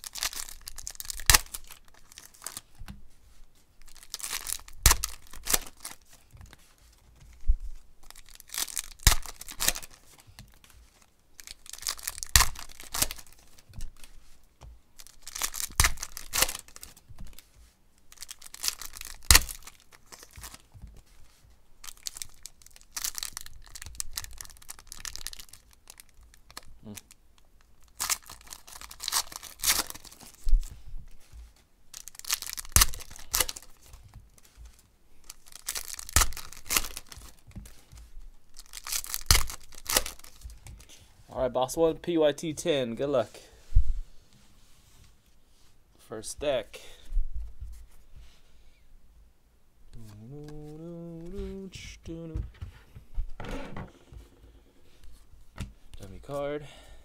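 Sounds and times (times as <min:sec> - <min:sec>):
foil wrappers tearing and crinkling: 0:00.0 - 0:02.8, 0:03.8 - 0:06.2, 0:08.0 - 0:14.2, 0:15.0 - 0:17.5, 0:18.1 - 0:20.7, 0:21.3 - 0:27.1, 0:27.8 - 0:30.6, 0:31.9 - 0:40.9.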